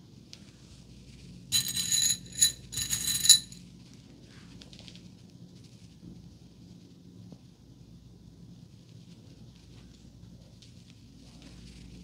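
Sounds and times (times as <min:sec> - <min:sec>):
metal bobby pins jingling: 0:01.6 - 0:03.6.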